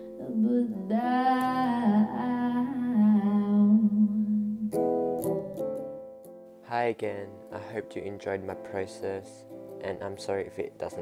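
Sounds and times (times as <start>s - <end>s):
person humming: 0.0s - 5.7s.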